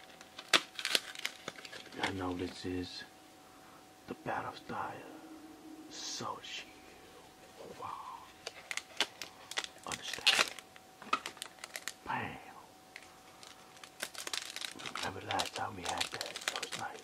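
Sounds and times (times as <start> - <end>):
foil pack crinkling and tearing: 0.0 - 2.6, 8.4 - 12.0, 13.0 - 17.0.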